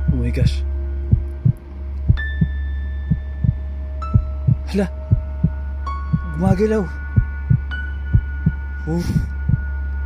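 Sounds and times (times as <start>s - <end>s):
loud low drone: 0.0s - 10.0s
heartbeat double thud: 3.1s - 6.6s.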